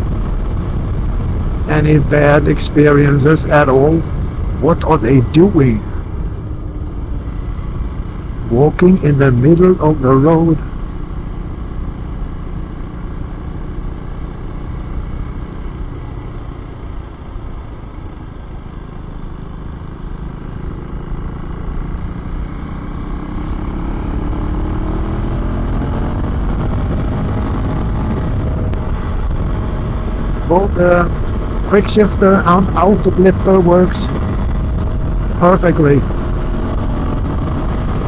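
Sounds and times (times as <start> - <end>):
wind rush on microphone: 0.0 - 2.8, 24.2 - 38.0
motorcycle engine accelerating: 0.0 - 38.0.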